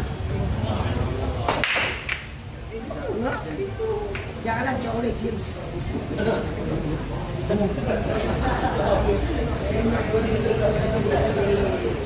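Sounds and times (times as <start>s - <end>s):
cue ball cracking into balls: 1.4s - 2.4s, 4.1s - 4.4s
pool balls clattering: 1.5s - 2.4s.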